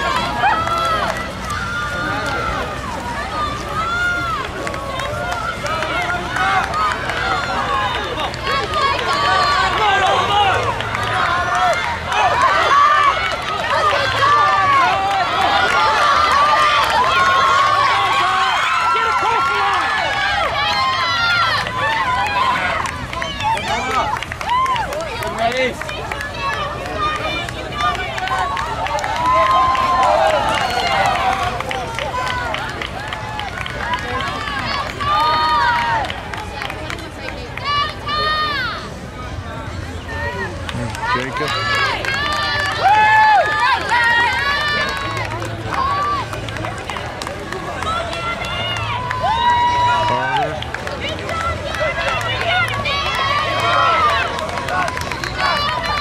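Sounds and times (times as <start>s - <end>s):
spectators shouting and cheering: 0.0s - 56.0s.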